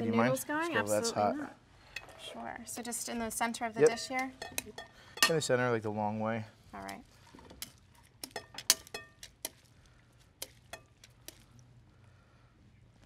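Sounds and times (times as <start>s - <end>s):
tongs and fork scraping glass bowls: 3.8s - 5.5s, 7.3s - 9.6s, 10.4s - 11.4s.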